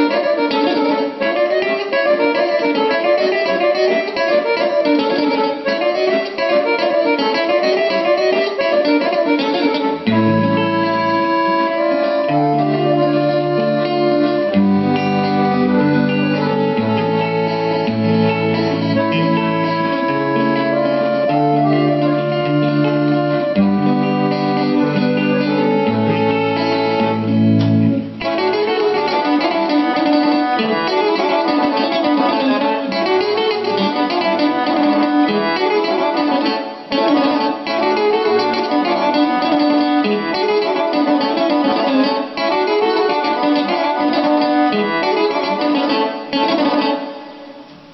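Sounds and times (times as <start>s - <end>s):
accordion: 0.0s - 47.9s
electric guitar: 0.0s - 47.9s.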